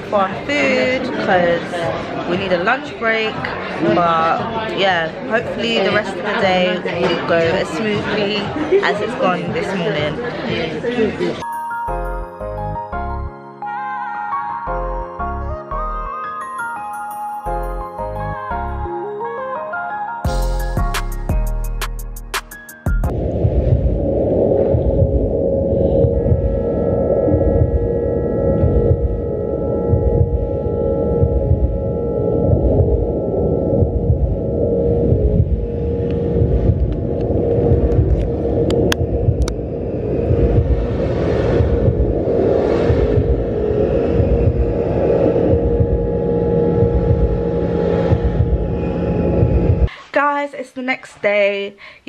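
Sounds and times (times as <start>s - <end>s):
high sustained bowl tones: 11.4s - 19.0s, 25.3s - 38.8s, 43.5s - 49.9s
deep steady rumble: 23.1s - 49.9s
deep throbbing drone: 23.1s - 49.9s.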